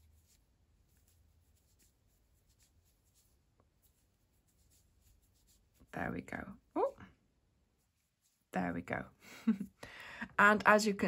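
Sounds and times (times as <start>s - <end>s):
crochet hook scratching yarn: 0.0s - 7.0s, 7.7s - 8.8s.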